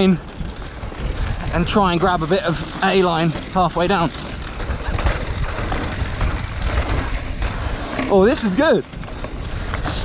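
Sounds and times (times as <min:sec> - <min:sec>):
bike rattling over dirt trail: 0:00.0 - 0:10.0
wind on microphone: 0:00.3 - 0:02.0, 0:04.4 - 0:07.6.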